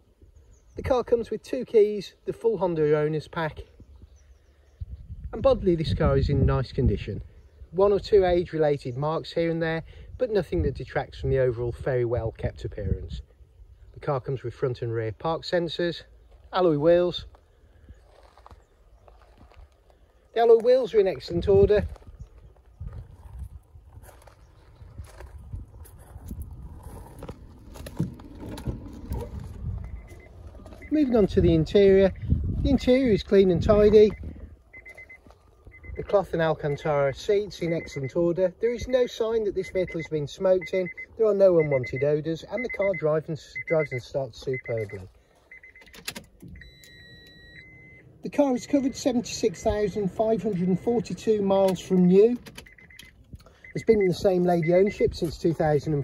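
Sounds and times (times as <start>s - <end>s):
footsteps crunching on gravel: 16.2s - 36.8s
low rumble: 21.9s - 36.1s
diesel engine cranking and idling: 26.1s - 55.9s.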